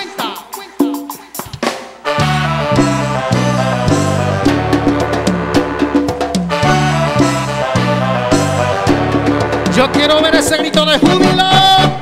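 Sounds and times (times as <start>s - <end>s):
bass line: 2.1s - 12.0s.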